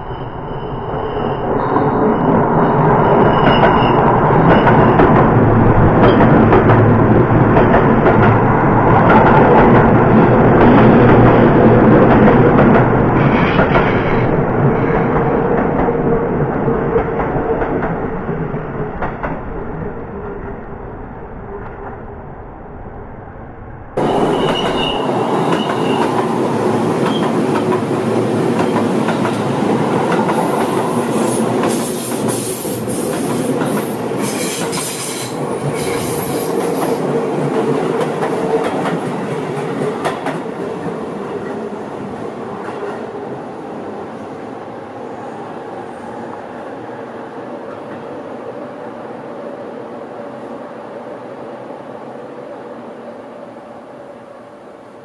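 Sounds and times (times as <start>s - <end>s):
high wheel squeals: 0.0s - 5.0s, 24.0s - 26.2s
electric train running past: 0.0s - 55.0s
rail-joint clatter: 24.0s - 26.3s.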